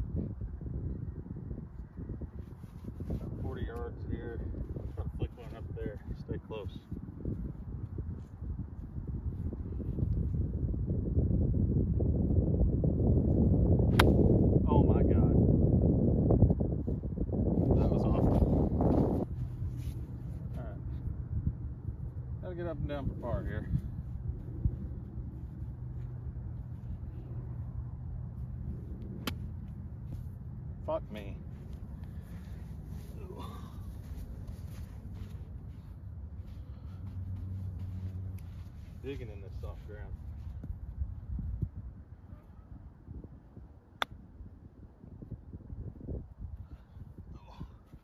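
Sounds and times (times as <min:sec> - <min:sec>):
wind rumbling on microphone: 0:00.0 - 0:48.0
golf club striking ball: 0:13.9 - 0:14.3, 0:29.2 - 0:29.6.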